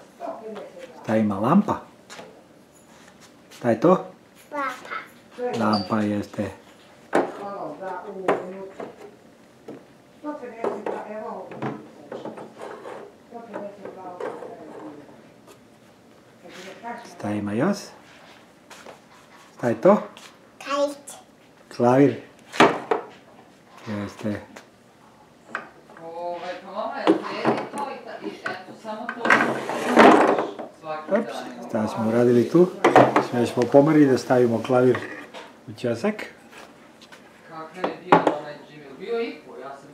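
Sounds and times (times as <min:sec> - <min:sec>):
toddler making wordless sounds: 0:04.5 - 0:05.2, 0:20.6 - 0:21.3
wooden toy furniture scraping: 0:12.4 - 0:13.1, 0:29.3 - 0:30.4.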